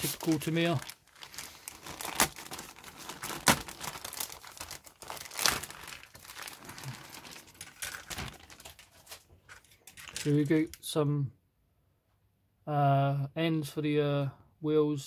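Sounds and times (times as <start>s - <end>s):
plastic bag crinkling: 0.0s - 10.9s.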